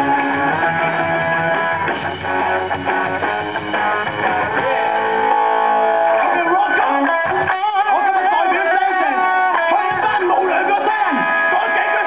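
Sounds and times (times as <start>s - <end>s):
electric guitars strumming chords: 0.0s - 12.0s
live rock band playing: 0.0s - 12.0s.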